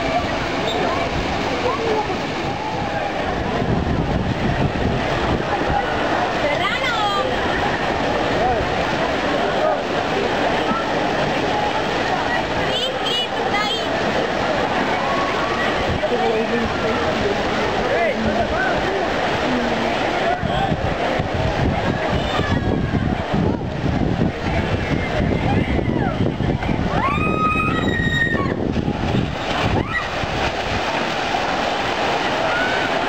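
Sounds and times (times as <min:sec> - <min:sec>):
wind buffeting microphone: 0:00.0 - 0:09.1, 0:14.8 - 0:32.6
steady rushing noise: 0:00.0 - 0:33.0.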